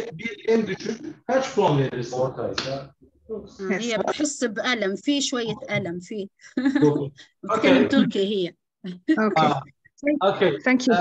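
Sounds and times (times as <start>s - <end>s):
person talking: 0.0s - 8.4s, 9.1s - 11.0s.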